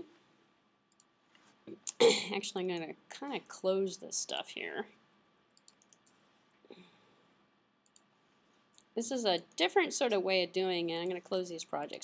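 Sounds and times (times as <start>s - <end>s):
computer mouse clicks: 5.5s - 6.2s, 7.8s - 8.1s.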